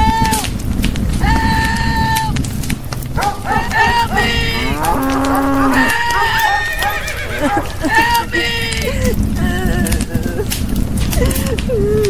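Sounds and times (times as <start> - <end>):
higher-pitched animal calls: 3.2 - 8.8
cow mooing: 3.4 - 7.7.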